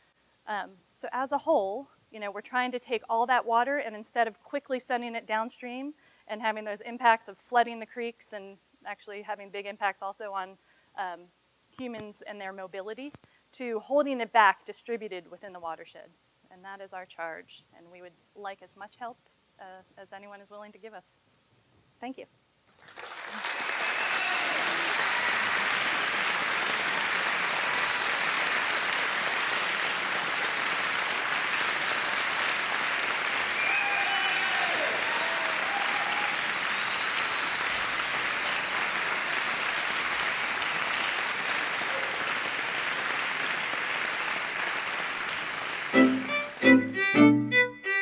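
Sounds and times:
audience applauding: 22.8s - 47.2s.

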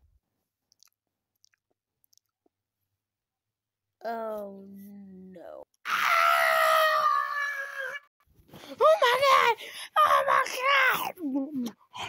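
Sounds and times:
child screaming: 5.8s - 8.1s.

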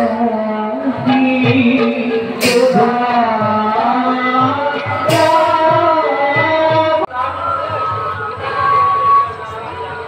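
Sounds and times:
person singing: 0.0s - 9.3s
steady drum beat: 1.0s - 7.1s
cymbal crash: 2.4s - 3.1s.

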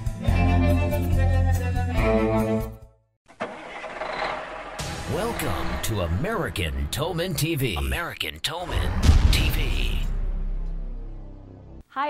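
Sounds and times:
truck engine running rough: 3.3s - 5.4s.

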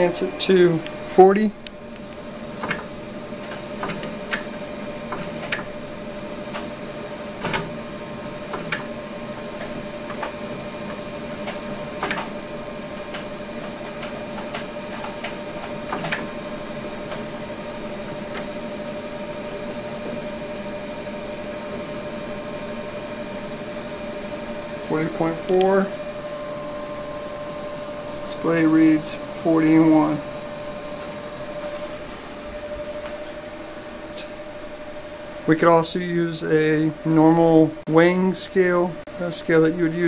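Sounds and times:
machine electrical hum: 0.0s - 40.0s.

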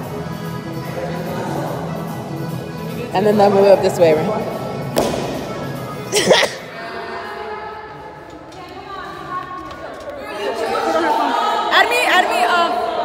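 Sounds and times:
recorded music: 0.0s - 6.8s.

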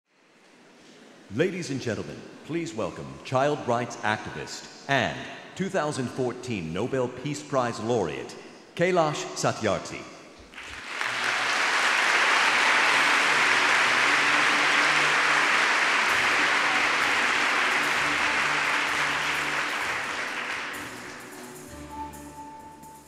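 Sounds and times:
audience applauding: 10.5s - 21.9s
music of held low notes: 12.8s - 23.0s.

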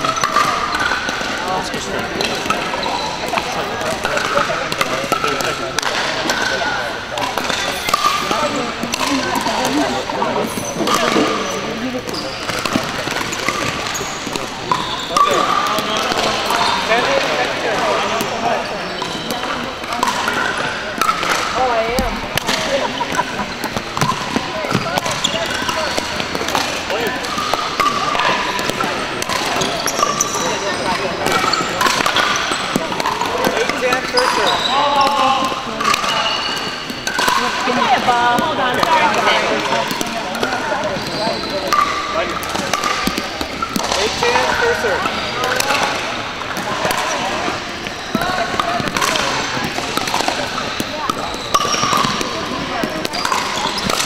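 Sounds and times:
ball bouncing on hardwood floor: 20.0s - 26.6s.

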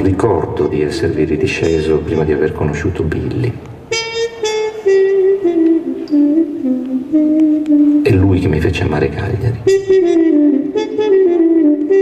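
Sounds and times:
solo trumpet melody: 0.9s - 2.8s, 3.9s - 12.0s.

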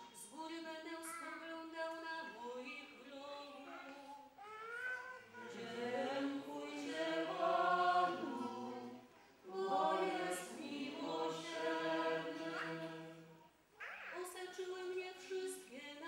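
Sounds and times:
unaccompanied group singing: 5.4s - 13.4s.

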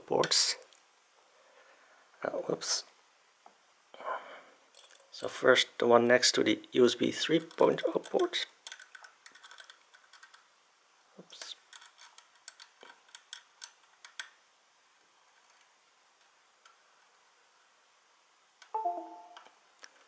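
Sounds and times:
descending electronic chime: 18.8s - 19.5s.

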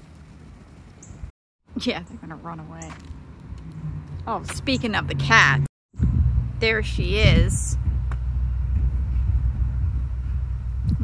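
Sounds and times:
low rumble of outdoor noise: 0.0s - 11.0s.

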